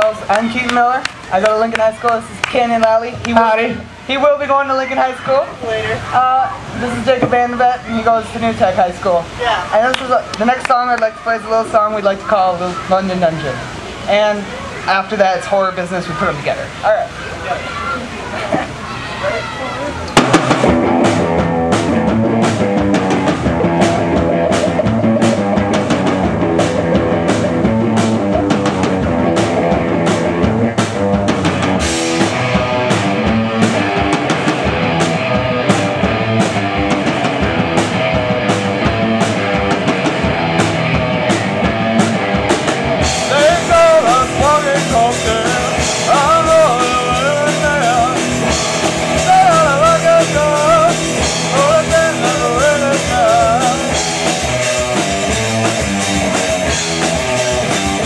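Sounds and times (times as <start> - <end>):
drum kit hitting: 7.1 - 7.6, 20.1 - 58.0
electric guitar chords: 20.1 - 58.0
person singing: 43.2 - 48.5, 49.1 - 55.0.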